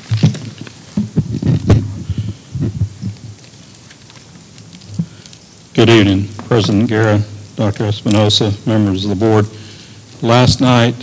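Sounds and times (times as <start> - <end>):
microphone thumps and bumps: 0.0 - 3.5, 10.4 - 10.8.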